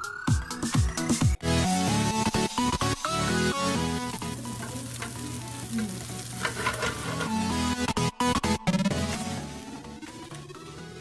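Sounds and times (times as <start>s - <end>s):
faint background music: 1.7s - 11.0s
food sizzling in a skillet: 1.8s - 10.8s.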